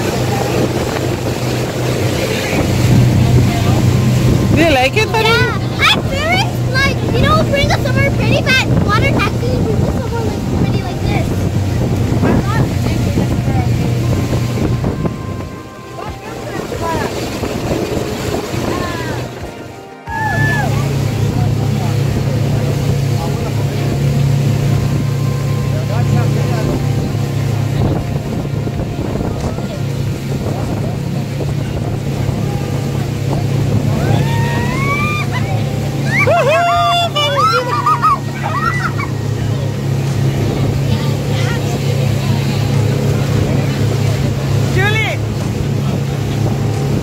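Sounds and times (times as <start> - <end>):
boat motor humming: 0.0 - 47.0
water and wind noise: 0.0 - 47.0.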